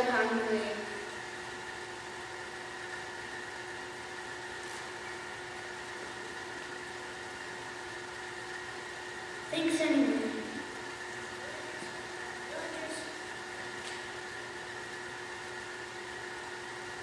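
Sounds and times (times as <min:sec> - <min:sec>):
hall hum and hiss: 0:00.0 - 0:17.0.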